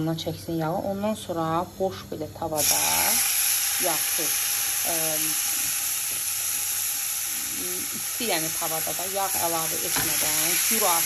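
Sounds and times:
steak sizzling in frying pan: 2.6 - 11.0.

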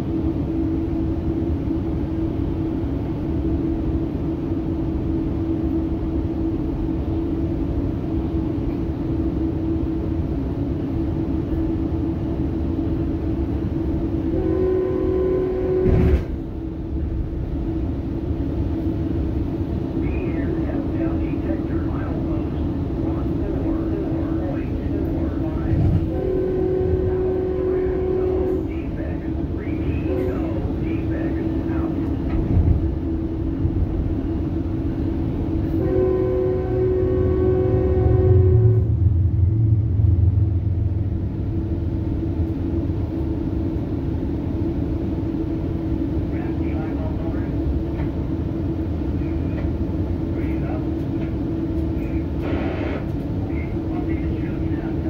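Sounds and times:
train rumble inside coach: 0.0 - 55.0
train horn: 14.3 - 16.3, 25.8 - 28.8, 30.0 - 30.6, 35.7 - 39.1.

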